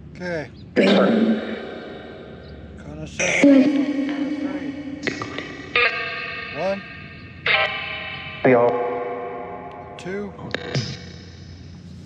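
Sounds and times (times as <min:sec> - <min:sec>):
echoing pitched fragments: 0:00.2 - 0:11.7.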